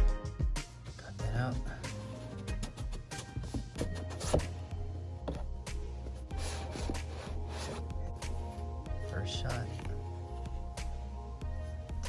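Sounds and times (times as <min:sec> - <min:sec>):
cardboard box knocks and scrapes: 0:03.4 - 0:04.6, 0:06.4 - 0:07.9.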